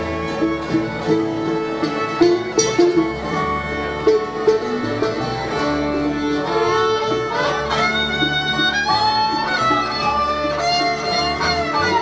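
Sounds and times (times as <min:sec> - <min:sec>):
fiddle melody: 0:00.0 - 0:12.0
plucked banjo and guitar: 0:00.0 - 0:12.0.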